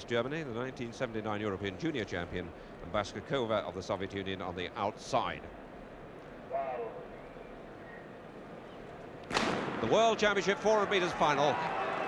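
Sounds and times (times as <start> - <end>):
stadium background: 0.0 - 12.0
starter's pistol shot: 9.3 - 9.9.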